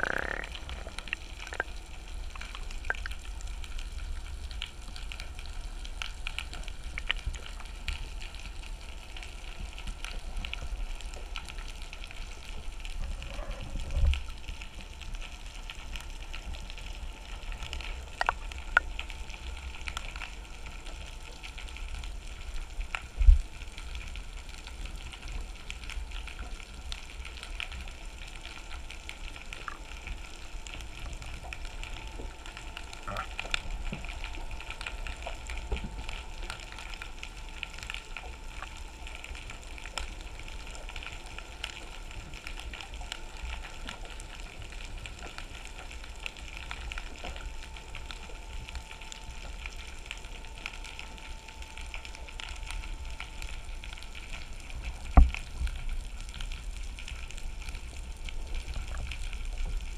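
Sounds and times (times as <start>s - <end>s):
crackles and clicks: 0.0s - 59.9s
low underwater rumble: 0.0s - 59.9s.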